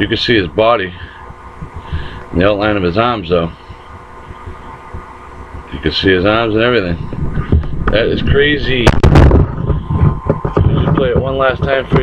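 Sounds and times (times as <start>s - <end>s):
microphone handling rumble: 0.0s - 12.0s
microphone handling thump: 1.0s - 12.0s.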